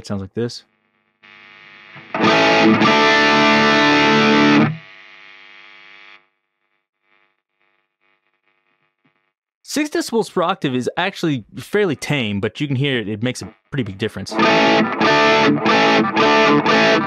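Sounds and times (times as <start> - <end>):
distorted electric guitar chord: 2.0 - 4.8, 14.3 - 17.0.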